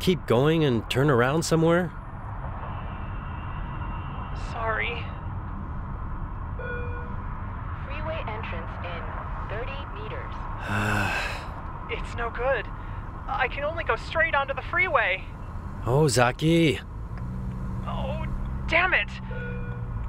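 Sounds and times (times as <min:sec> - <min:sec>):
short beep: 0:06.6 - 0:07.2, 0:19.2 - 0:19.9
man's strained vocal sounds: 0:10.6 - 0:11.5
sharp gasp: 0:10.6 - 0:11.5.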